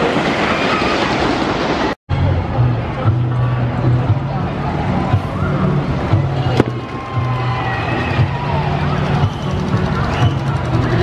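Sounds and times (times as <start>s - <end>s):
low rumble of ride machinery: 0.0s - 11.0s
distant voices: 3.6s - 11.0s.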